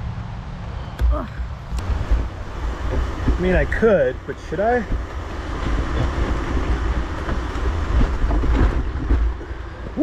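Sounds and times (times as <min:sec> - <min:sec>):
wind rumble on microphone: 0:00.0 - 0:10.0
tyres rolling on dirt: 0:01.4 - 0:10.0
bike rattling and clicking: 0:01.7 - 0:10.0.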